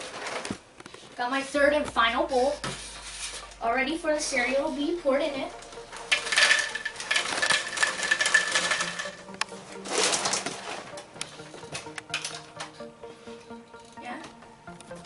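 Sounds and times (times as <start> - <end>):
cereal pouring into bowl: 6.1 - 9.3.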